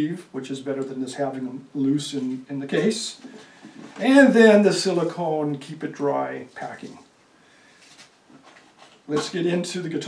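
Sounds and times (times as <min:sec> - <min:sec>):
soft handling noises: 0:01.8 - 0:05.1, 0:06.4 - 0:09.8.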